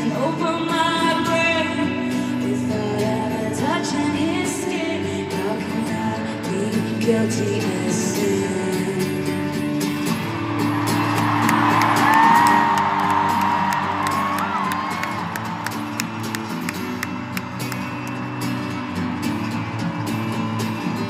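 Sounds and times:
crowd cheering and whooping: 10.0s - 21.0s.

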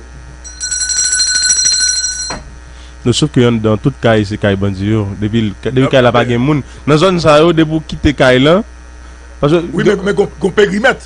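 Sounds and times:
high electronic ringing trill: 0.4s - 2.5s.

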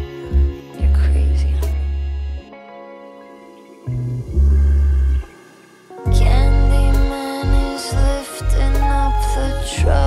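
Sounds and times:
deep bass note: 3.9s - 5.3s, 6.1s - 10.0s.

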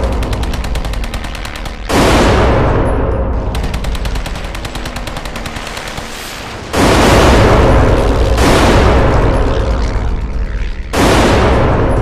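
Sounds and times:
rapid machine-gun fire: 0.0s - 2.8s, 3.5s - 9.8s, 10.9s - 12.0s
loud blast: 6.4s - 9.8s.

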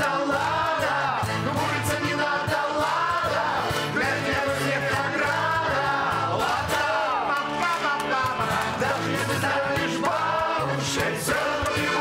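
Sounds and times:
accordion: 0.0s - 12.0s
acoustic guitar: 0.0s - 12.0s
person singing: 0.0s - 12.0s.

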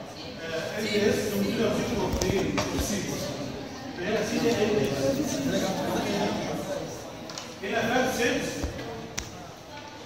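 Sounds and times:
man speaking: 0.4s - 7.0s, 7.6s - 8.8s.

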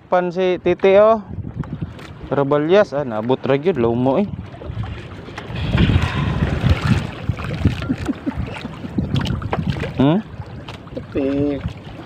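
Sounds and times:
sea water splashing around boat: 0.0s - 12.0s
wind buffeting microphone: 0.0s - 12.0s.

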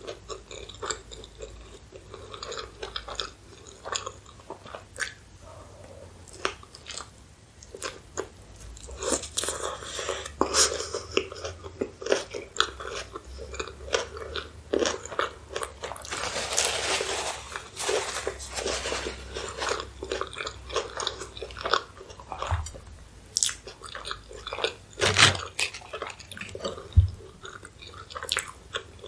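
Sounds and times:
napkin rustling: 16.0s - 19.9s.

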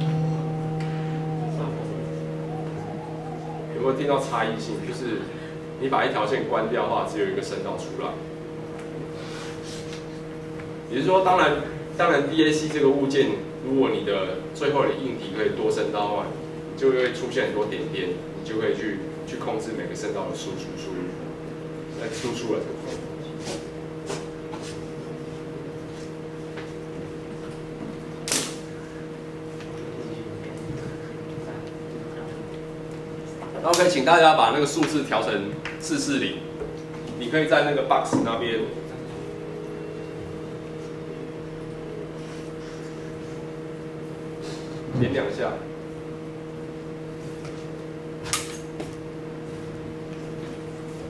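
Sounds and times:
low hum of held tones: 0.0s - 51.0s.

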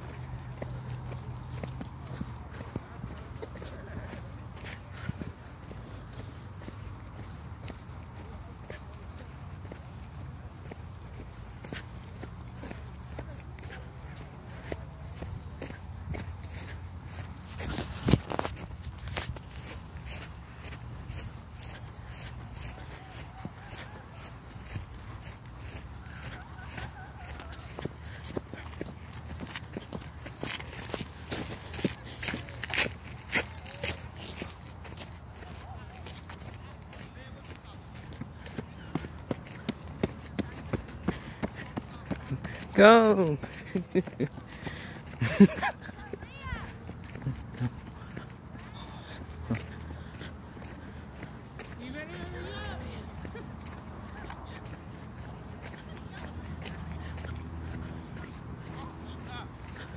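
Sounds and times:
footsteps on grass and track: 0.0s - 59.9s.

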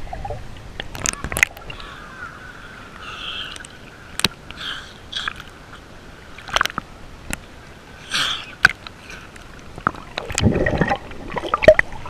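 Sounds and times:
water rushing over camera: 0.0s - 12.0s.

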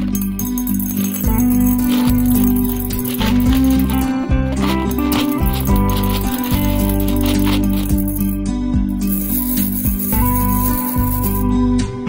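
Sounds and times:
candies clicking into glass bowl: 0.0s - 8.4s, 9.0s - 11.5s
candies rattling in plastic box: 0.0s - 8.4s, 9.0s - 11.4s
background music: 0.0s - 12.0s.

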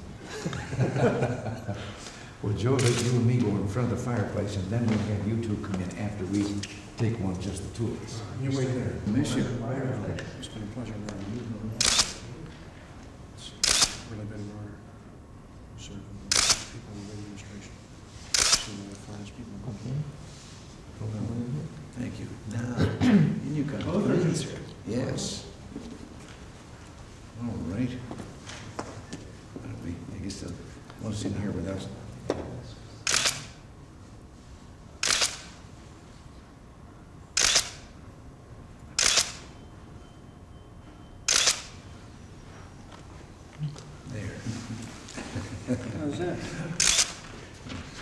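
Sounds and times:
camera shutter clicks: 2.8s - 3.2s, 11.8s - 12.2s, 13.6s - 14.1s, 16.3s - 16.8s, 18.3s - 18.8s, 33.0s - 33.6s, 35.0s - 35.6s, 37.4s - 37.9s, 39.0s - 39.5s, 41.3s - 41.8s, 46.8s - 47.2s.

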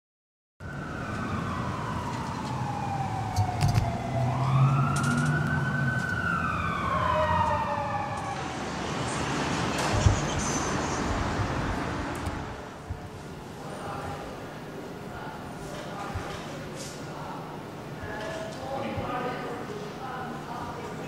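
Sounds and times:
emergency siren wailing: 0.6s - 12.8s
street noise: 0.6s - 21.0s.

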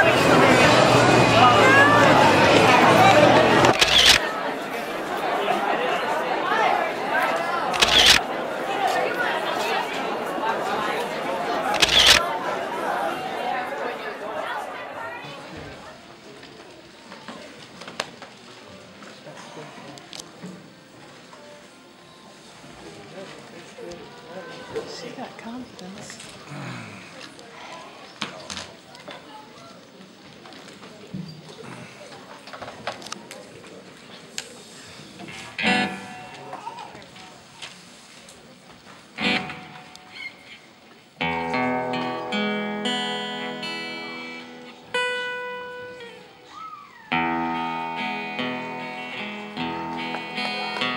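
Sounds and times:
chatter of many voices: 0.0s - 50.9s
acoustic guitar chord strummed: 35.3s - 36.6s, 39.2s - 40.1s, 41.2s - 46.3s, 47.1s - 50.9s.

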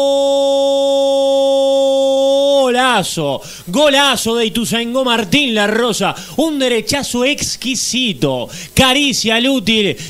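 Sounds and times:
commentator's long goal cry: 0.0s - 2.9s.

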